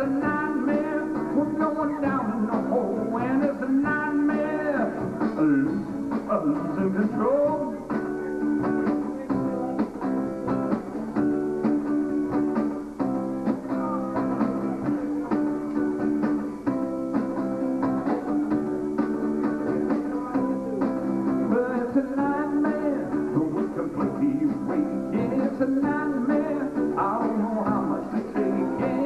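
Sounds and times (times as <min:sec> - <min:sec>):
acoustic guitar strumming chords: 0:00.0 - 0:29.0.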